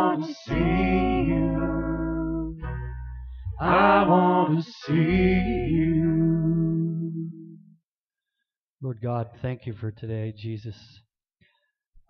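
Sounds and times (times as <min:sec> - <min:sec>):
low sustained musical note: 0:01.2 - 0:04.2.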